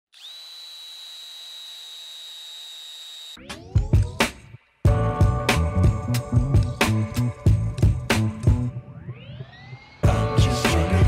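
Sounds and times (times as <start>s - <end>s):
power drill whining: 0.1s - 3.4s.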